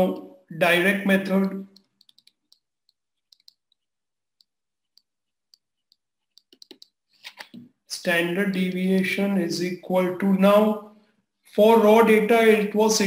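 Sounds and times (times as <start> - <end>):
stylus tapping on tablet screen: 1.4 - 7.6.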